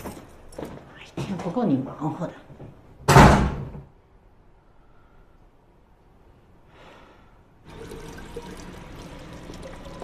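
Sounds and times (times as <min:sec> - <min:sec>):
door slamming shut: 0:03.0 - 0:03.9.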